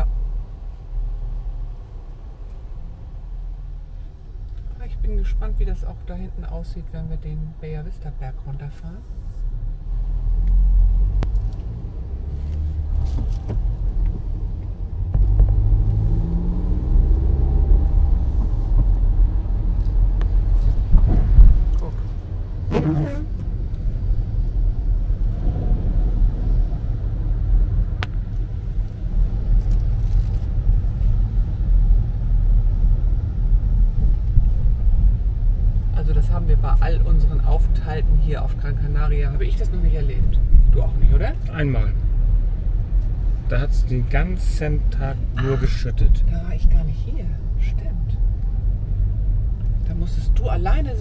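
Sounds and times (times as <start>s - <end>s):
car engine and road rumble: 0.0s - 51.0s.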